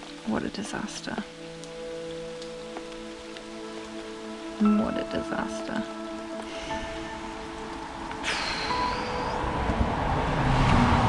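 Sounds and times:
background music: 0.0s - 11.0s
heavy rain falling: 0.0s - 11.0s
loud hiss: 8.2s - 9.4s.

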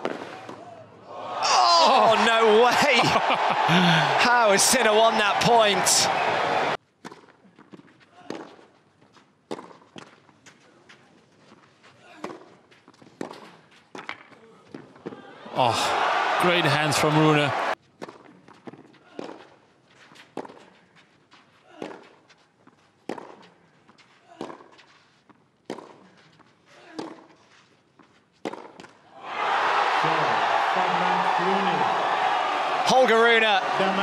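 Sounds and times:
crowd cheering: 1.0s - 6.8s, 15.2s - 17.8s, 29.2s - 34.0s
tennis racket hitting ball: 28.4s - 28.9s.

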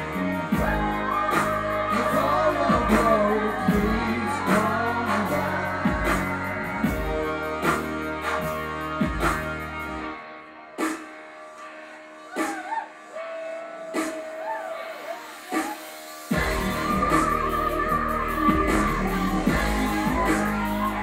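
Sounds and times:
electronic rock band playing: 0.0s - 21.0s.

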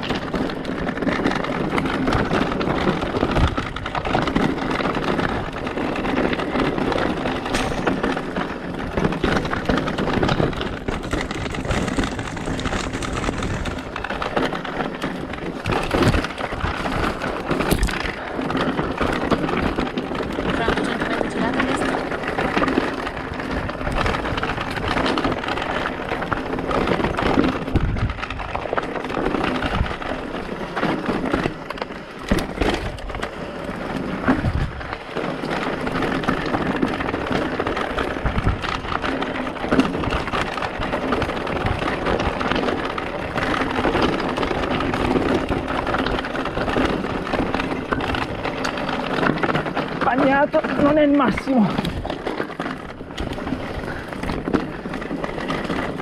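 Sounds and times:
bike knocking and rattling: 0.0s - 56.0s
tyres crunching on loose stones: 0.0s - 56.0s.

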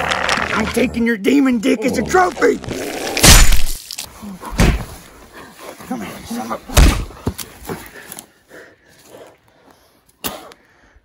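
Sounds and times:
sharp thuds: 4.5s - 5.0s.

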